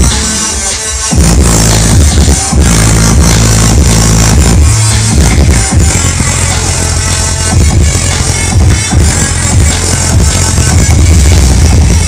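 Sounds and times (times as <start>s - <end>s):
loud electronic dance music: 0.0s - 12.0s.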